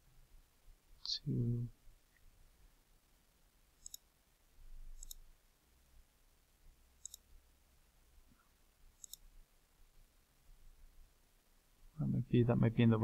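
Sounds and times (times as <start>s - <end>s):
faint low hum: 0.0s - 13.0s
mouse button clicks: 5.0s - 5.2s, 9.0s - 9.2s.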